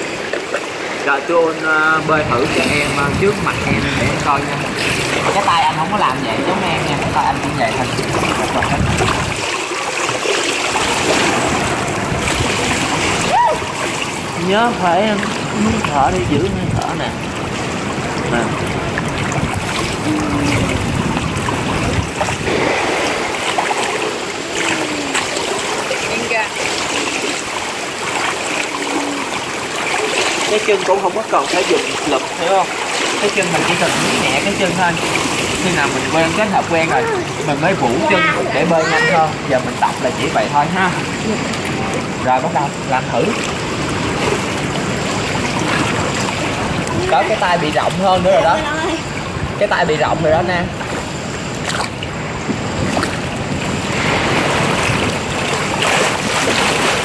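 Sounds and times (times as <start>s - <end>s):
water splashing and churning: 0.0s - 57.0s.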